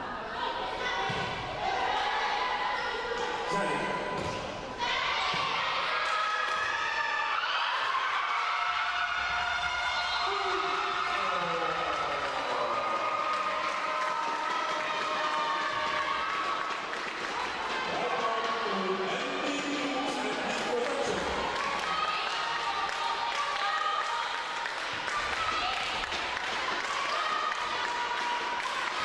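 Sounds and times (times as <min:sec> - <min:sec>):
players and spectators shouting: 0:00.2 - 0:16.6.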